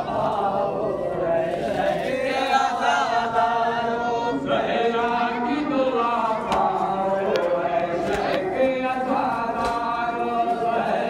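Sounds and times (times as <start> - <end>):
men chanting a mourning lament: 0.0 - 11.0.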